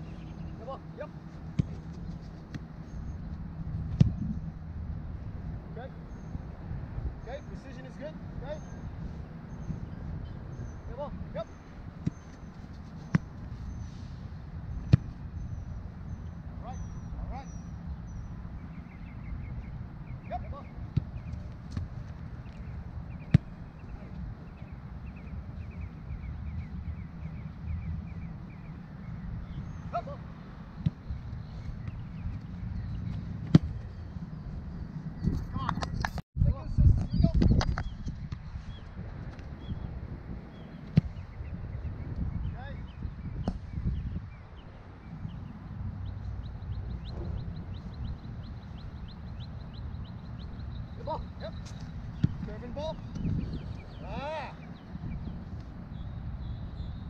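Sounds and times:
soccer ball kicked thud: 1.5 - 2.7, 3.8 - 4.3, 13.1 - 13.4, 14.8 - 15.2, 20.9 - 22.0, 23.2 - 23.6, 30.8 - 31.0, 33.1 - 33.8, 40.8 - 41.2, 43.4 - 43.8, 51.7 - 52.5.

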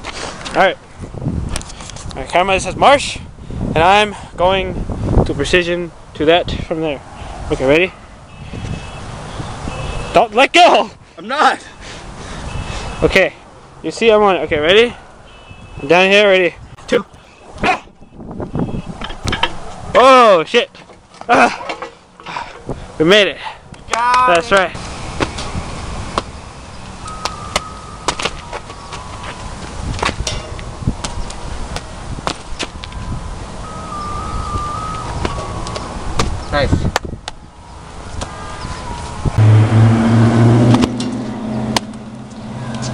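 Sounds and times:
vehicle engine humming: 16.6 - 19.9, 24.8 - 32.1, 37.2 - 42.9.

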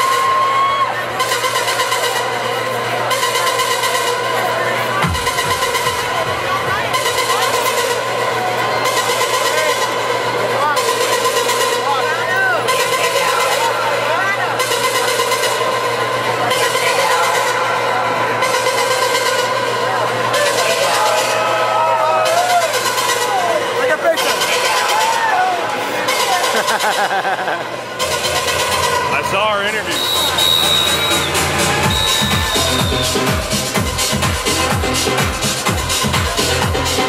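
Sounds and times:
crowd talking and calling out: 0.0 - 37.0
dance music: 0.0 - 37.0.

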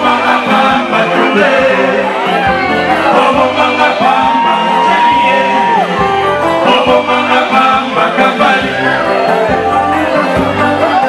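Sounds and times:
live band with electric guitars: 0.0 - 11.0
person singing: 0.0 - 11.0.

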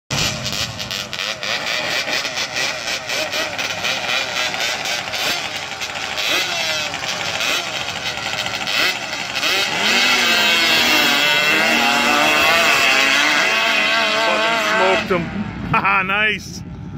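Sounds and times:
quad engines revving: 0.1 - 15.8.

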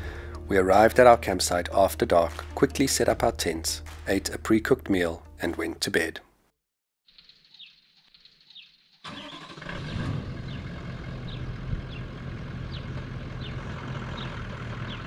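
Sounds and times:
vehicle engine running: 9.7 - 15.0.

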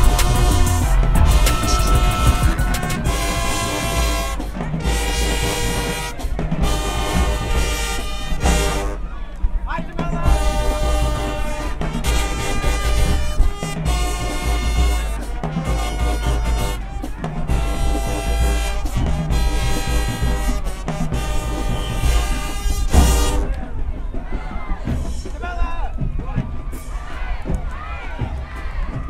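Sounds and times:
marching band playing: 0.0 - 29.0.

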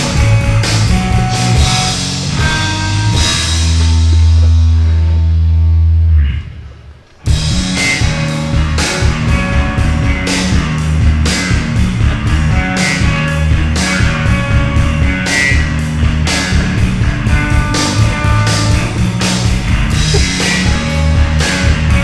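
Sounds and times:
loud rock band playing: 0.0 - 5.1, 7.3 - 22.0.

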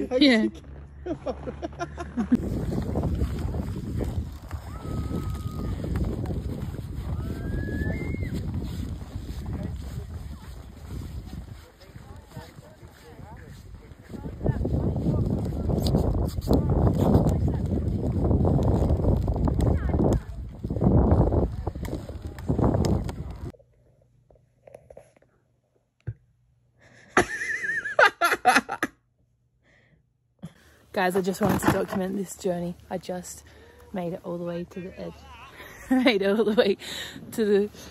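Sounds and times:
wind buffeting microphone: 2.0 - 23.5.

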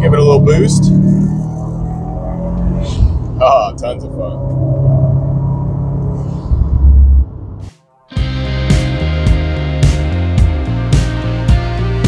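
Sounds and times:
car driving uphill rumble: 0.0 - 7.6
road and wind noise: 0.0 - 7.9.

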